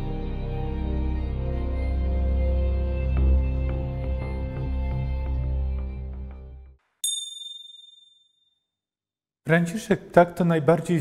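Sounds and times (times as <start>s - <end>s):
high bell-like ding: 7.0s - 8.4s.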